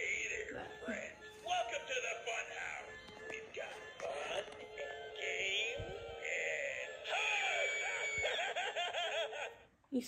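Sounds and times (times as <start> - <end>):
doll cackling laughs: 7.8 - 9.7.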